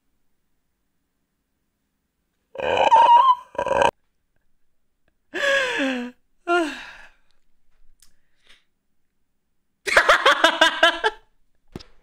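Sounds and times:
person crying out wordlessly: 2.6 - 3.9.

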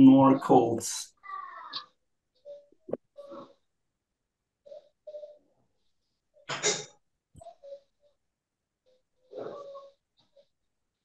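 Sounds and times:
broken voice over video call: 0.0 - 2.0.

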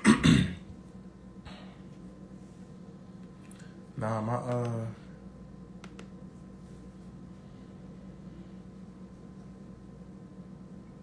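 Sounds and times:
man clearing his throat: 0.0 - 0.7.

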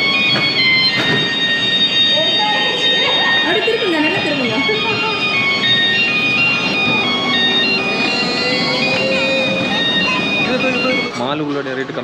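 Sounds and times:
kiddie ride electronic jingle: 0.0 - 12.0.

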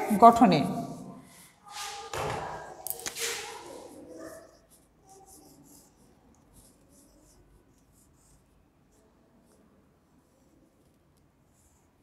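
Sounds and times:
marker pen on whiteboard: 1.3 - 12.0.

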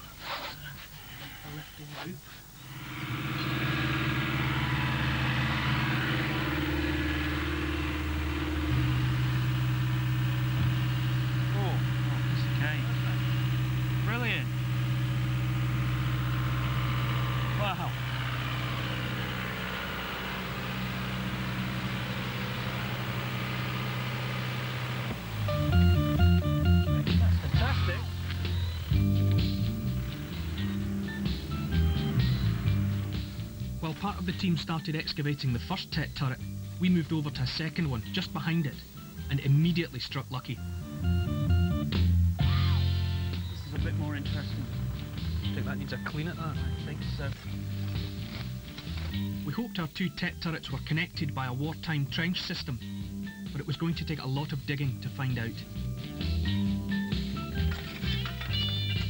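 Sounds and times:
diesel excavator engine running: 2.6 - 39.8, 40.5 - 49.6, 55.3 - 59.0.

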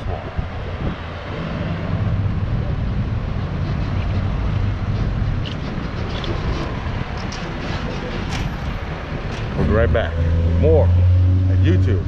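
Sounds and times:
street traffic rumble: 0.0 - 12.0
wind on microphone: 0.0 - 12.0.

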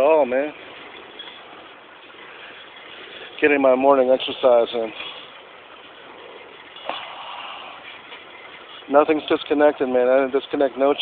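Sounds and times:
bicycle drivetrain whirring: 0.0 - 11.0.

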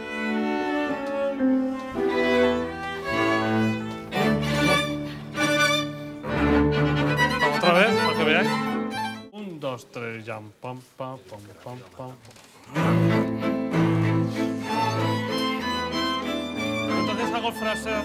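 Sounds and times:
orchestra bowed strings: 0.0 - 9.3, 12.7 - 18.0.

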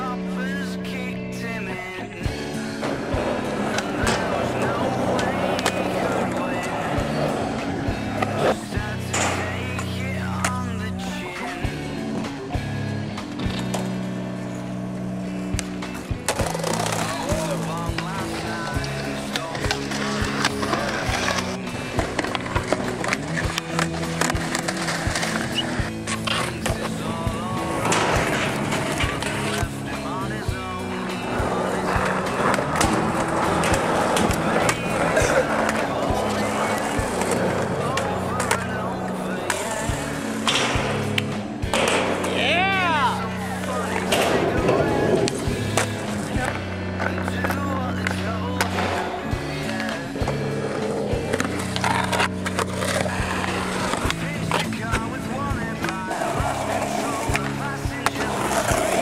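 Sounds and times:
music with vocals: 0.0 - 59.0
skateboard wheels rolling on concrete: 0.0 - 59.0
skateboards clacking and landing: 0.0 - 59.0.

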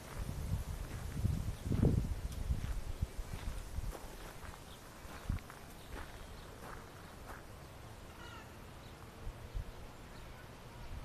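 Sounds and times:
footsteps on garden path: 0.0 - 9.2
high animal calls: 8.1 - 8.6.

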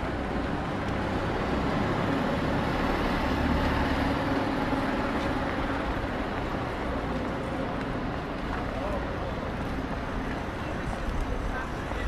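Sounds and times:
low rumble of traffic: 0.0 - 12.0
voices of passers-by: 0.0 - 12.0.

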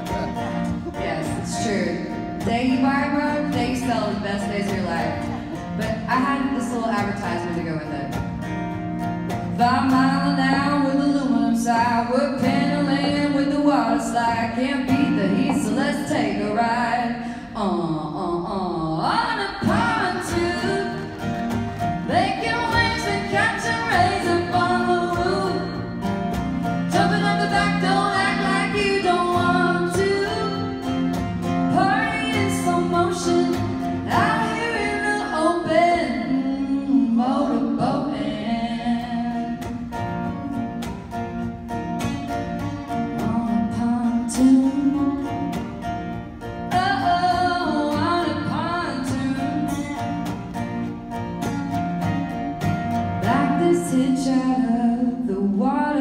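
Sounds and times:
woman singing: 0.0 - 8.2, 9.5 - 40.5, 43.0 - 45.9, 46.6 - 50.5, 51.8 - 56.0
strummed acoustic guitars: 0.0 - 56.0.

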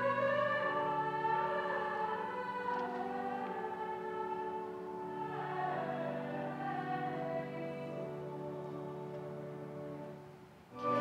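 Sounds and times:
church music sustained chord: 0.0 - 11.0.

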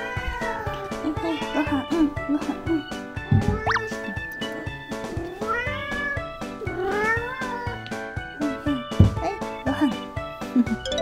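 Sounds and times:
cat meowing: 5.2 - 7.8.

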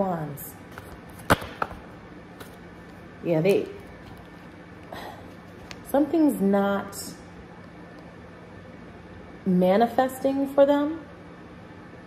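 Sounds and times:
card slapping onto table: 1.2 - 1.8.

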